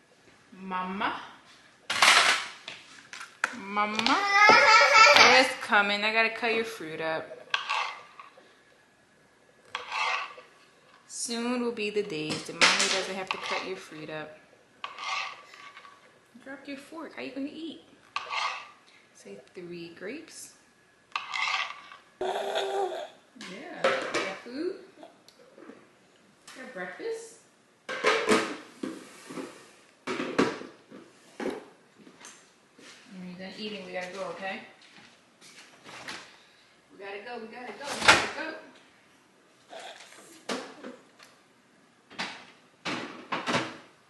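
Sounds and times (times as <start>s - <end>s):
knife scraping cutting board: 7.5s - 8.2s, 9.7s - 10.4s, 13.3s - 13.7s, 14.8s - 16.0s, 18.2s - 18.8s, 21.2s - 22.0s.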